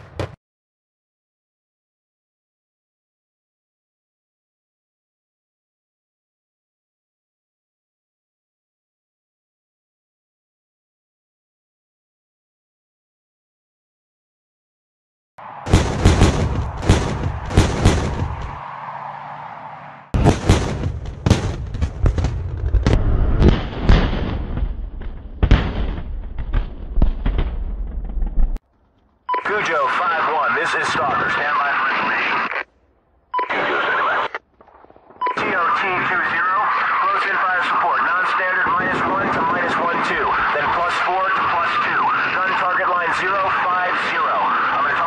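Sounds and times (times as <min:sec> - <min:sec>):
gunfire reports with rumble: 0:15.6 - 0:18.6, 0:20.2 - 0:28.6
beep tone: 0:29.3 - 0:29.7, 0:33.3 - 0:33.6, 0:35.2 - 0:35.5
radio transmission burst: 0:29.3 - 0:32.7, 0:33.4 - 0:34.4, 0:35.2 - 0:45.0
overlapping voices over radio: 0:29.4 - 0:32.7, 0:33.4 - 0:34.4, 0:35.3 - 0:45.0.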